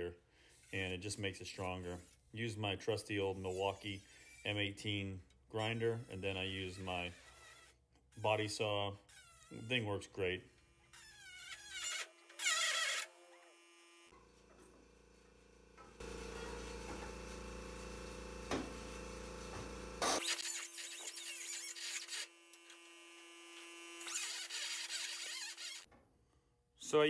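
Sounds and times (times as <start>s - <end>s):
pneumatic grinding tool on steel: 3.4s - 5.0s, 11.0s - 13.2s, 20.0s - 22.8s, 24.0s - 25.9s.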